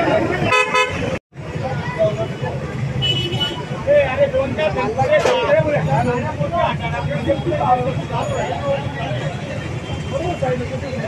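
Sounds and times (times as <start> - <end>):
street chatter: 0.0 - 11.0
vehicle horn toot: 0.5 - 1.2.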